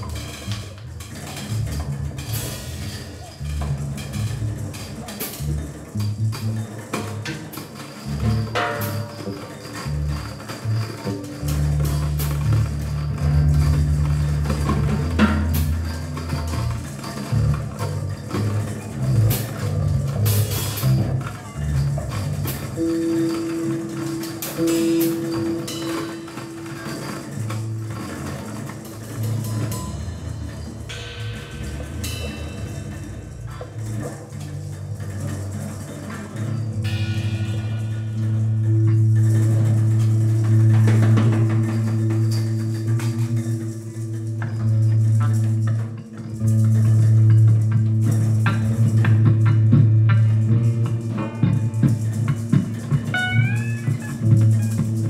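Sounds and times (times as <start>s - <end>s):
drum and cymbal hits: 0.0s - 45.7s
low bass notes: 0.0s - 55.0s
held guitar note: 49.7s - 55.0s.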